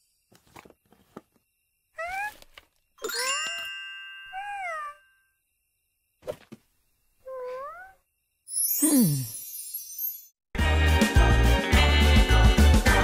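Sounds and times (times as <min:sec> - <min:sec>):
squeaky cartoon character calls: 0:02.0 - 0:02.4, 0:04.3 - 0:05.0, 0:07.3 - 0:08.0
bright chime ringing: 0:03.0 - 0:05.3.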